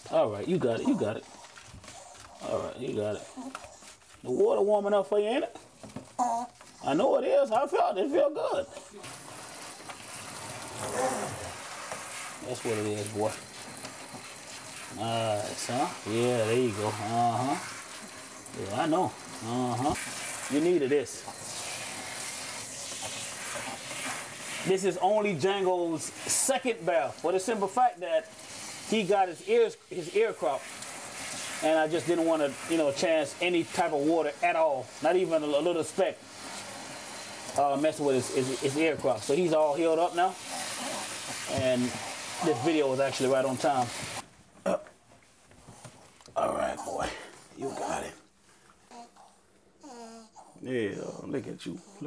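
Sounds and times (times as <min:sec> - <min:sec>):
sink sprayer spraying water: 0:04.2 - 0:44.2
person speaking: 0:12.4 - 0:13.5, 0:14.9 - 0:17.8, 0:18.4 - 0:21.3, 0:41.5 - 0:44.1, 0:46.3 - 0:48.3.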